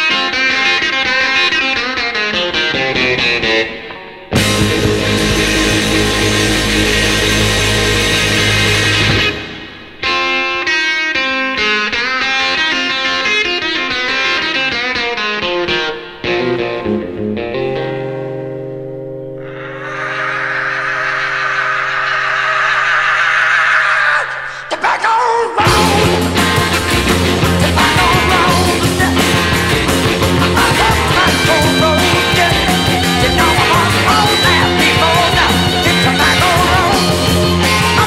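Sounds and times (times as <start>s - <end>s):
blues-rock band with distorted guitar: 0.0s - 23.3s, 25.6s - 38.0s.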